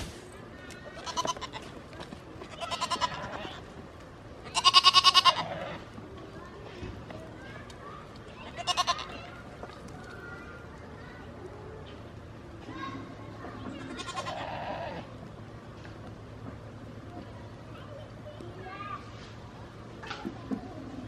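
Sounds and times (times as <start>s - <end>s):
goats bleating: 1.0s - 1.7s, 2.4s - 3.7s, 4.4s - 5.9s, 8.4s - 9.2s, 13.8s - 15.1s.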